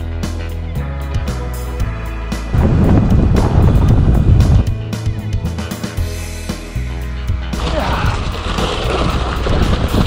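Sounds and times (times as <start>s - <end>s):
background music with bass line: 0.0s - 10.0s
wind rush: 2.5s - 4.9s
bicycle tyres on gravel: 7.5s - 10.0s.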